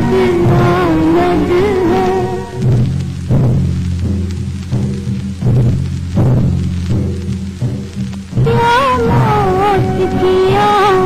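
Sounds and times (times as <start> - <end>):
low musical accompaniment: 0.0 - 11.0.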